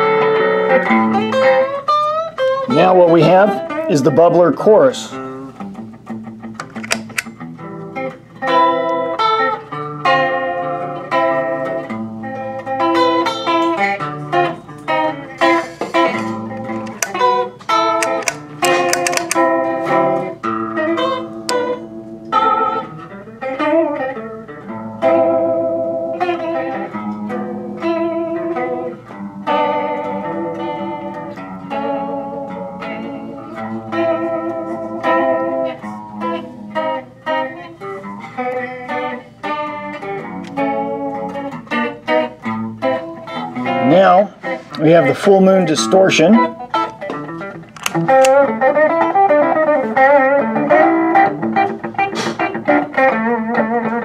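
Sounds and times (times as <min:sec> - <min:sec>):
electric guitar with chorus effect: 0:00.0 - 0:54.0.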